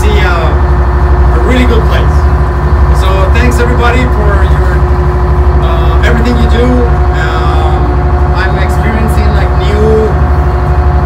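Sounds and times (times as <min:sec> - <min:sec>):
boat engine drone: 0:00.0 - 0:11.0
voices talking: 0:02.9 - 0:10.2.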